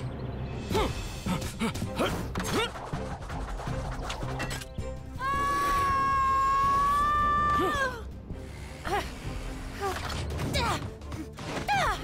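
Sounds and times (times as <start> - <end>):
cartoon action music: 0.6 - 7.9.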